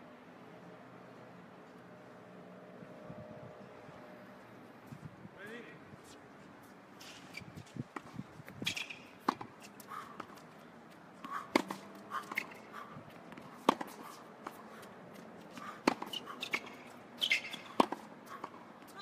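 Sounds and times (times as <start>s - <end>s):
tennis balls struck with rackets: 7.9s - 10.4s, 11.2s - 12.7s, 13.3s - 14.7s, 15.5s - 19.0s.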